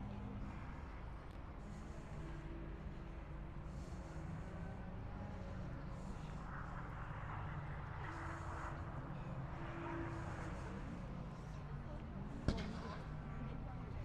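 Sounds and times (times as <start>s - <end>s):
steady low rumble: 0.0s - 14.0s.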